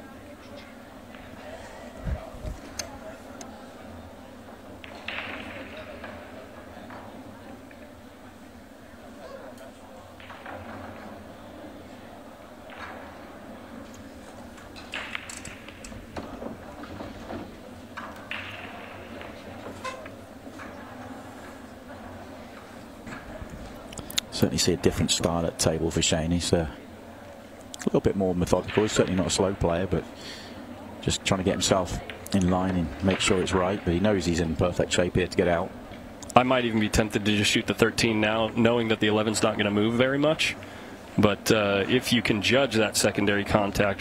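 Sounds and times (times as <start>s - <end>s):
faint background voices: 0.0s - 14.9s.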